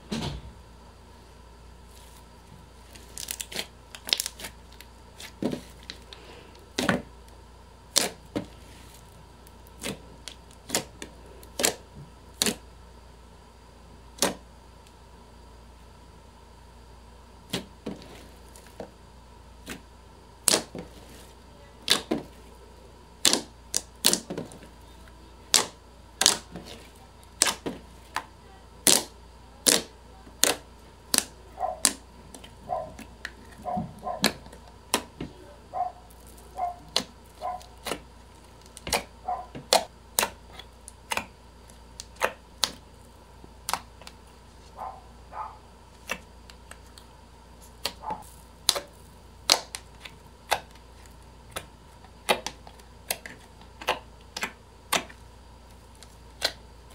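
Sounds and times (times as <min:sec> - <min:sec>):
fingers squeezing slime: 0:25.5 - 0:35.2, 0:55.8 - 0:56.6.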